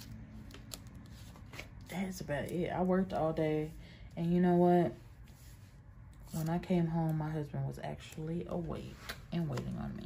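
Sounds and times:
paper sticker sheets rustling: 0.0 - 3.4, 5.0 - 10.0.

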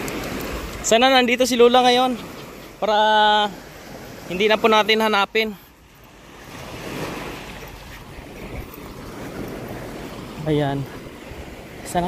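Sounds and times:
small waves breaking on shore: 0.0 - 12.0.

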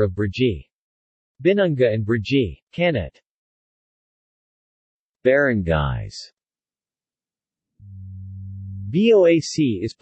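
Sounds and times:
synthetic speech: 0.0 - 0.7, 1.4 - 3.2, 5.3 - 6.3, 7.9 - 10.0
low electronic hum: 7.8 - 9.0.

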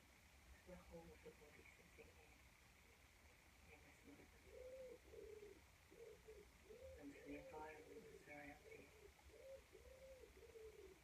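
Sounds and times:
pigeon cooing: 4.0 - 11.0.

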